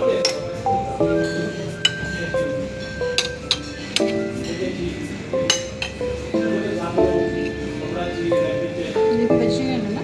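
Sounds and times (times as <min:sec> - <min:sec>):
background music of held notes: 0:00.0 - 0:10.0
cutlery clinking on plate: 0:01.2 - 0:06.1.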